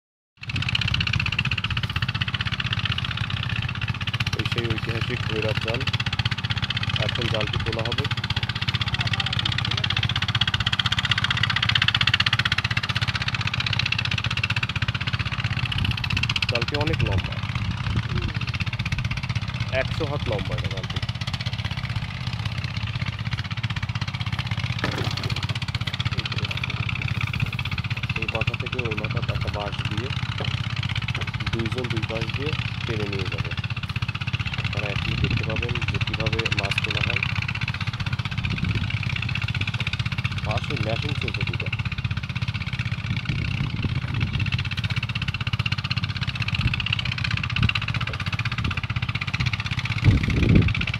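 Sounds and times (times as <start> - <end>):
engine humming steadily: 0.4 - 50.9.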